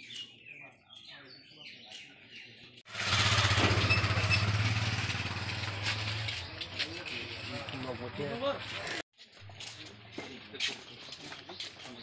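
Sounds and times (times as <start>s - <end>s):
engine running close by: 2.9s - 8.2s.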